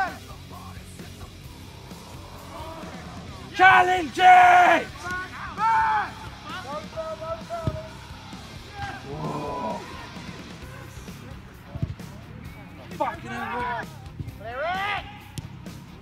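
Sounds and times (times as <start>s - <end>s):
distant shouts of players: 1.9s - 11.2s, 13.2s - 15.6s
football being kicked: 7.5s - 7.9s, 11.7s - 12.1s.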